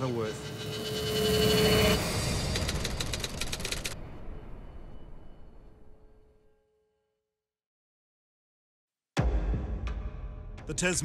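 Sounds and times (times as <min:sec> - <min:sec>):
rapid typewriter-like clicks: 0:02.4 - 0:04.0.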